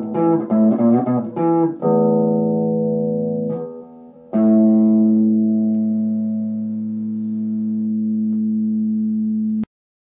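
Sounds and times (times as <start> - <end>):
electric guitar strum ringing: 0.0 - 9.6.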